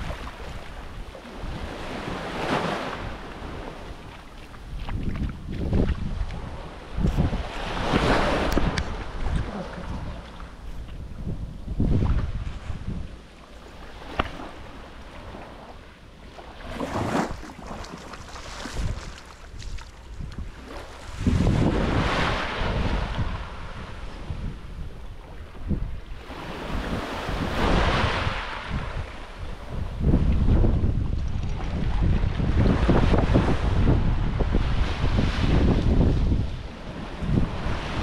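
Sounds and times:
small waves washing on shore: 0.0 - 38.0
wind rumbling on microphone: 0.0 - 38.0.

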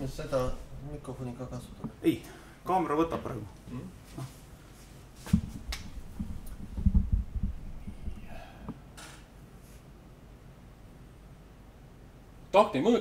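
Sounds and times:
faint rustles: 3.6 - 10.0
low thumps and knocks: 5.3 - 8.8.

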